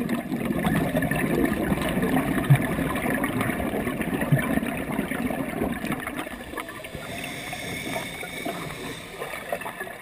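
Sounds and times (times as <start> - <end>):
underwater regulator bubbles: 0.0 - 10.0.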